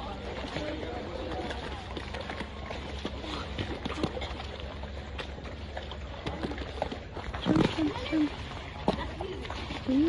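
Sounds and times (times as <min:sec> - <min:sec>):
people talking: 0:07.4 - 0:10.0.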